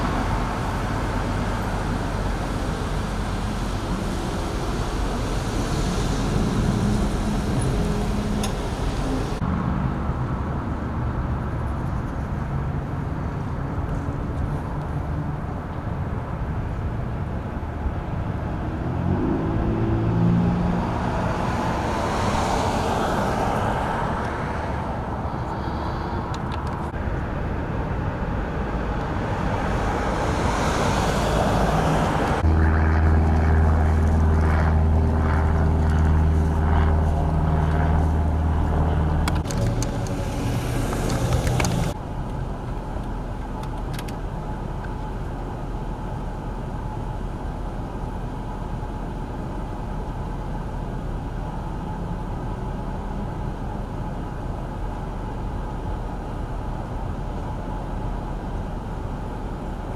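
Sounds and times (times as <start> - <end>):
traffic rumble: 0.0 - 59.9
vehicle engine humming: 0.0 - 59.9
vehicle passing: 18.1 - 42.0.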